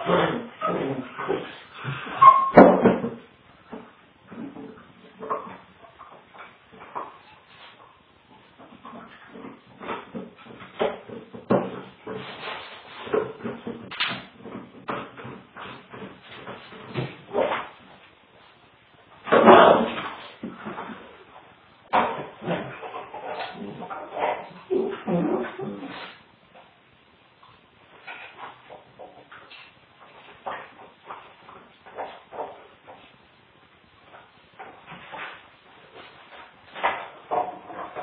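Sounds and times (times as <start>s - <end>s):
dogs knocking and scuffling: 0.1s - 7.8s, 8.4s - 18.0s, 34.0s - 38.0s.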